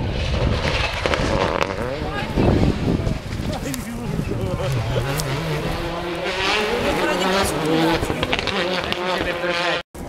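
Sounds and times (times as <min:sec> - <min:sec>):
rally car engine revving: 0:00.0 - 0:10.0
spectators talking: 0:01.8 - 0:09.8.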